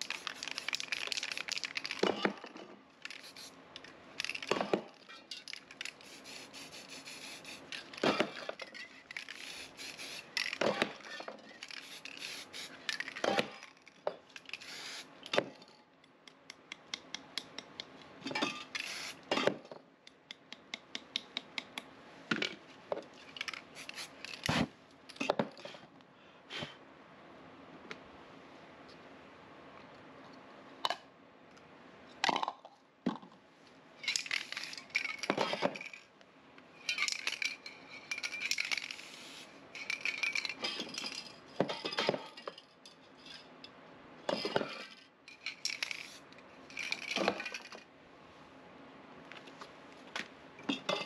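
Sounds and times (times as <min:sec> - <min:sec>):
spray-paint can hissing: 0:00.0 - 0:02.0, 0:03.1 - 0:03.6, 0:05.8 - 0:08.0, 0:09.2 - 0:10.6, 0:11.6 - 0:13.0, 0:14.5 - 0:15.1, 0:18.8 - 0:19.2, 0:23.8 - 0:24.5, 0:38.4 - 0:39.5.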